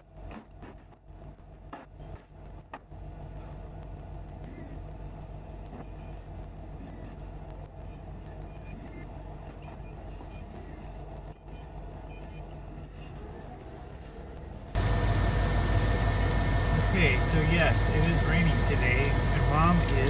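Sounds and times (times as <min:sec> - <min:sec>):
forklift engine running: 0:12.6 - 0:20.0.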